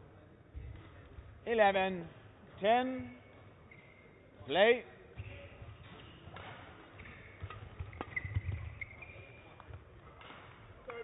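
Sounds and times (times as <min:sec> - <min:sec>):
rackets striking shuttlecock: 0:05.2 - 0:11.0.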